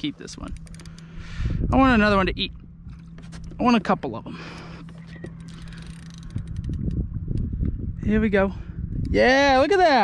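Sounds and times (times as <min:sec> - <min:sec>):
fishing reel clicking: 0:00.3 - 0:01.2, 0:04.8 - 0:07.5.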